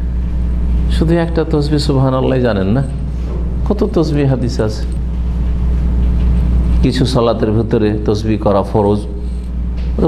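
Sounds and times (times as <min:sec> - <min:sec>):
low electrical hum: 0:00.0 - 0:10.0
man speaking: 0:00.9 - 0:05.0, 0:06.8 - 0:09.3.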